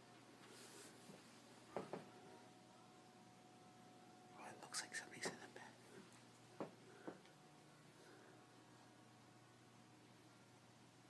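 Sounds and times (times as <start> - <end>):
person whispering: 4.3 - 6.1.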